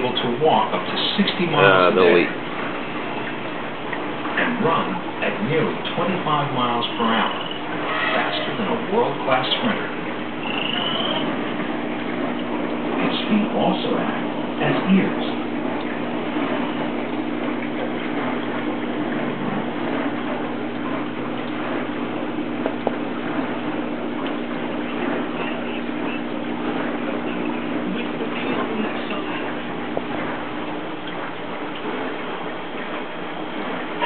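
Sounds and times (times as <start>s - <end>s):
aquarium filter water rushing: 0.0s - 34.0s
low even hum: 0.0s - 34.0s.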